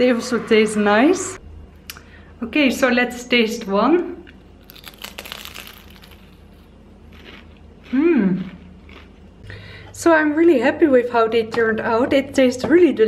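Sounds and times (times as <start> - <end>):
crunch of fried pastry: 4.6 - 9.2
person chewing: 4.6 - 9.4
person humming: 7.9 - 8.4.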